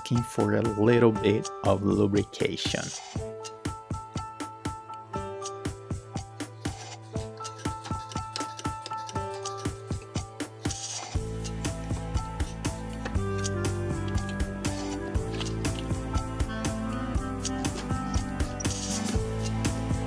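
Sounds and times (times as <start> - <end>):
background music with beat: 0.0 - 20.0.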